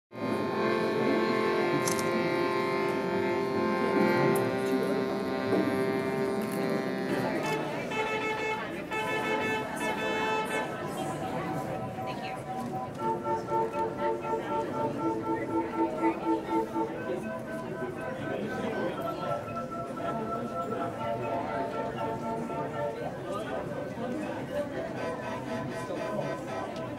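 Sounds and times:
wooden keyboard instrument music: 0.2 - 26.9.

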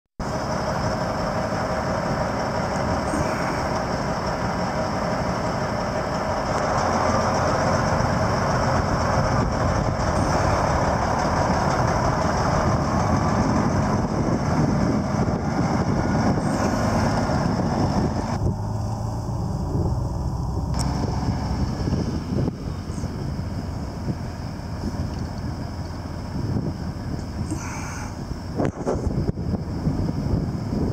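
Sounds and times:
diesel truck driving past: 0.2 - 30.9.

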